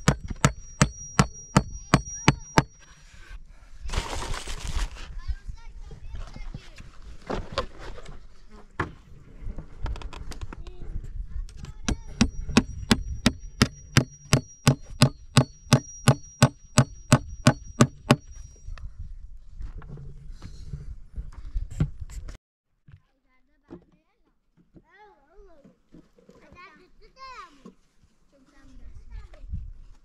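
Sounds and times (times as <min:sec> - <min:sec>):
hammer striking nail into wood: 0:00.0 - 0:02.9, 0:11.9 - 0:18.4
high ringing note: 0:00.3 - 0:03.1, 0:12.1 - 0:18.8.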